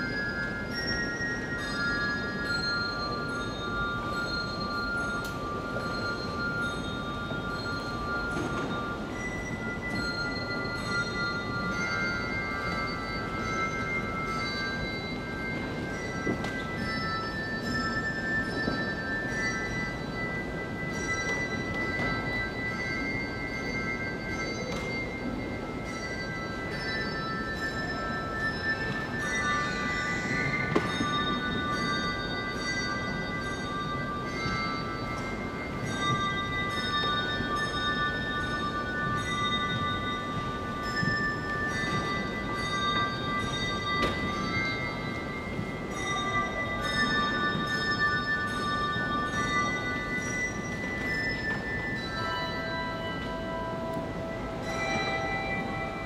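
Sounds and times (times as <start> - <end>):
bell-like ringing notes: 0.0 - 56.0.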